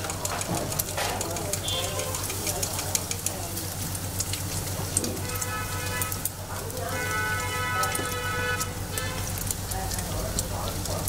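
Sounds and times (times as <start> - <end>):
dough frying in hot oil: 0.0 - 11.0.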